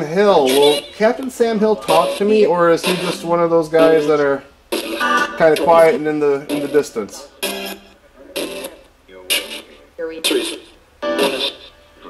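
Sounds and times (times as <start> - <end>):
chopped voice fragments: 0.0 - 11.7.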